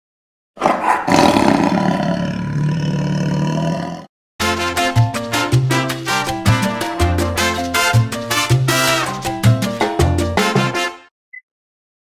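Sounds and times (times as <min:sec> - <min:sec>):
loud low roar: 0:00.6 - 0:04.1.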